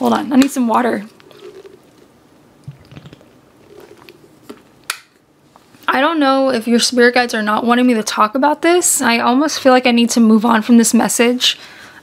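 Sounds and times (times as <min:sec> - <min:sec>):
person sipping and swallowing water: 0:01.1 - 0:04.7.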